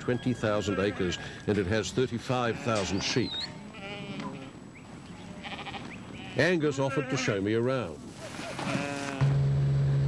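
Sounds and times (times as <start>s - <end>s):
sheep bleating: 0.4s - 1.3s, 2.2s - 4.6s, 5.2s - 7.5s, 8.2s - 9.3s.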